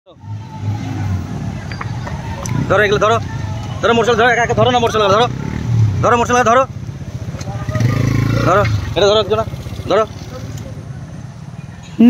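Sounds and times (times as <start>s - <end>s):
motorcycle engines running: 0.2s - 12.0s.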